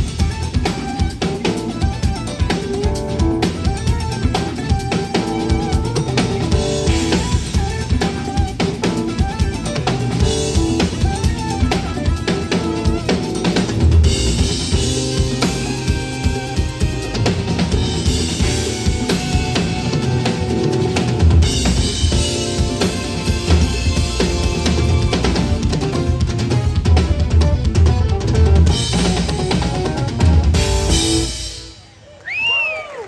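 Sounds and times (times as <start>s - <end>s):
backing track music: 0.0s - 32.0s
drum kit groove: 0.0s - 32.0s.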